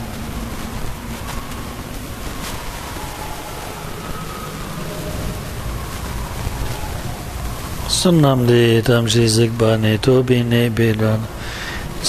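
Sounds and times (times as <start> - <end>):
room noise hiss and rumble: 0.0 - 12.0.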